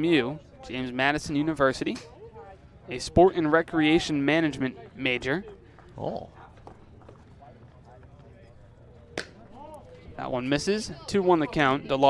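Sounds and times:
baseball smacking into mitt: 9.2s - 9.4s.

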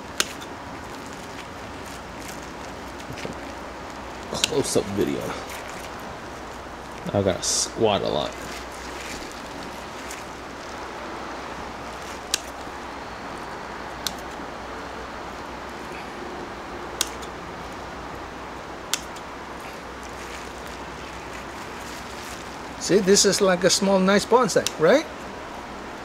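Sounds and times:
pruning scissors snipping twigs: 0.0s - 7.1s, 11.6s - 12.8s, 13.4s - 14.4s, 16.9s - 17.8s, 18.8s - 23.5s, 24.5s - 25.0s
steady background hiss: 0.0s - 26.0s.

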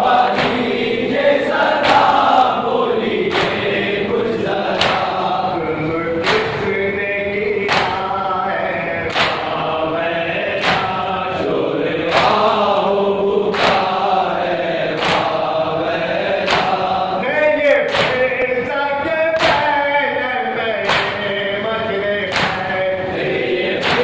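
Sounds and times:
men chanting a lament: 0.0s - 24.0s.

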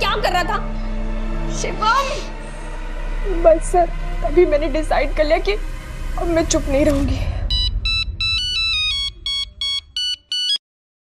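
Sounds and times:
phone ringtone beeping melody: 7.5s - 10.6s.

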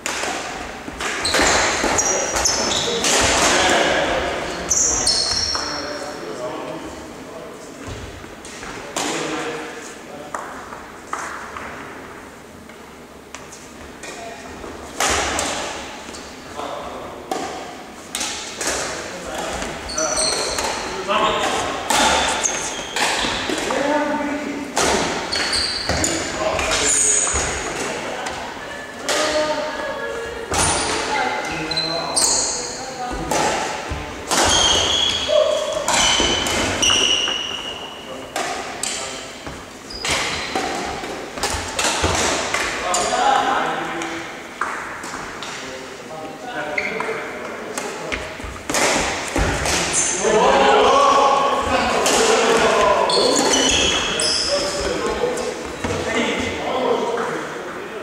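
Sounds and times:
shoes squeaking on wooden floor: 0.9s - 3.0s, 4.5s - 5.8s, 19.4s - 23.6s, 25.2s - 27.7s, 30.6s - 33.2s, 33.9s - 38.0s, 39.4s - 42.2s, 46.7s - 47.2s, 52.6s - 56.4s.

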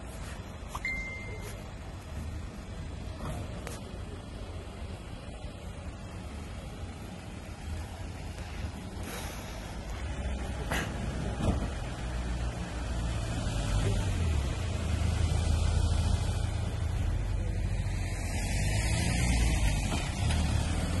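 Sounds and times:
van engine running: 0.0s - 21.0s.

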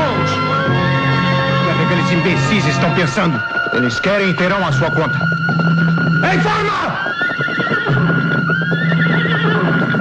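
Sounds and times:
film music: 0.0s - 10.0s
horses galloping: 0.0s - 10.0s
horse whinnying: 4.6s - 10.0s.

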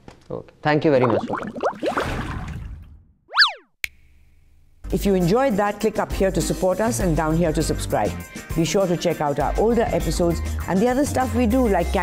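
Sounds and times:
synthetic swoop tone: 3.3s - 3.7s.

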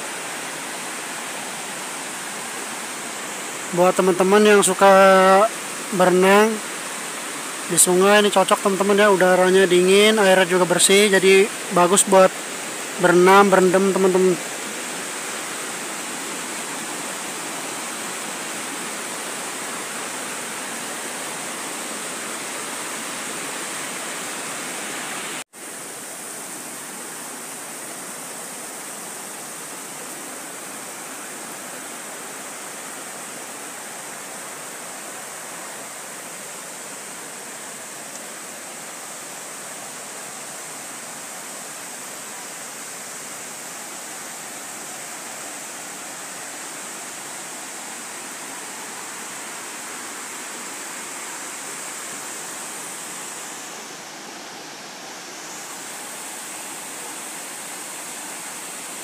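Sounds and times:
river running over rocks: 0.0s - 59.0s.

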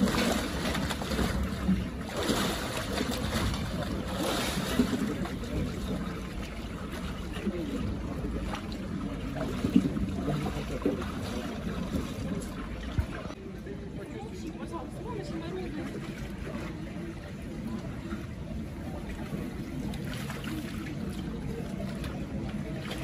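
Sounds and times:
faint voices: 0.0s - 23.0s
water sloshing from wading: 0.0s - 23.0s
water splashing from swimming: 0.0s - 23.0s.

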